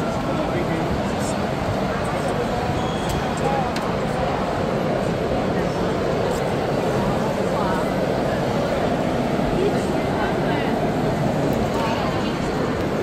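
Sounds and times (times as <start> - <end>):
dense indoor background noise: 0.0 - 13.0.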